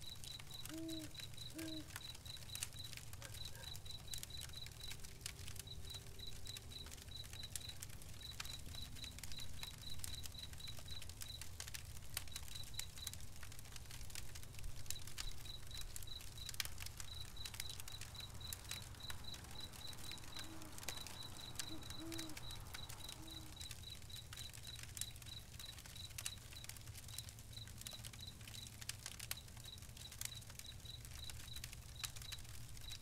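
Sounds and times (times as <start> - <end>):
insect chirping: 0.0 - 11.5, 14.8 - 33.0
campfire crackling and popping: 0.0 - 33.0.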